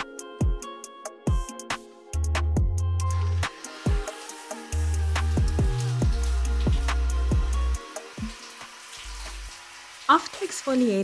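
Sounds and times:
shower water spraying: 0:03.0 - 0:11.0.

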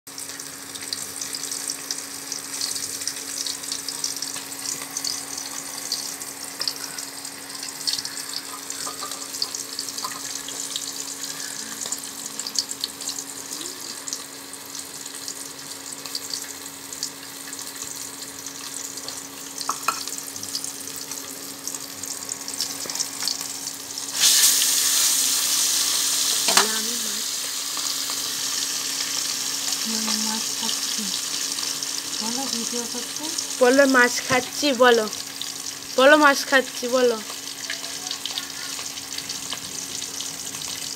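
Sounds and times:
vegetables sizzling in hot oil: 0:00.1 - 0:40.9.

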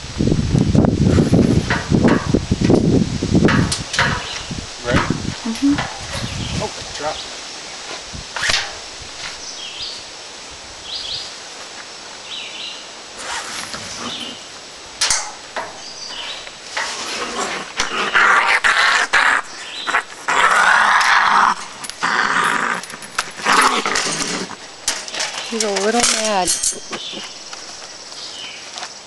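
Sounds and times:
sharp metal knocks: 0:01.6 - 0:02.4, 0:03.4 - 0:05.2, 0:15.0 - 0:16.9
raccoon growling and hissing: 0:16.8 - 0:24.9.

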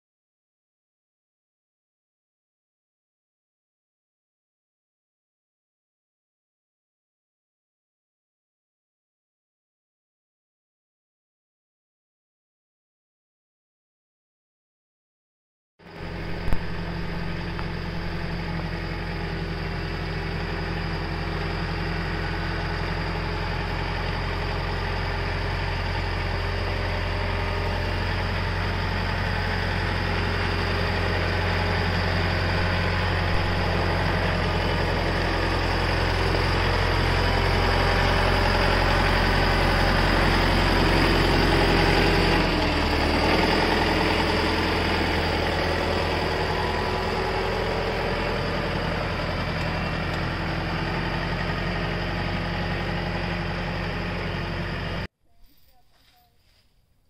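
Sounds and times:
tractor engine running: 0:15.8 - 0:55.1.

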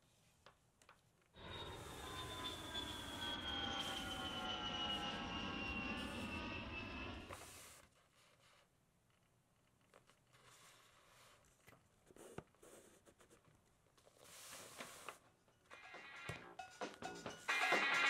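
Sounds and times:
jet engine rumble and whine: 0:01.4 - 0:07.7.

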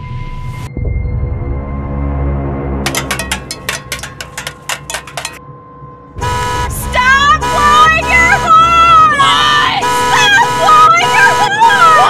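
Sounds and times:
rapid sharp hits: 0:02.9 - 0:05.4
low dark soundtrack rumble: 0:05.4 - 0:09.8
vehicle horn blaring: 0:06.2 - 0:11.9.

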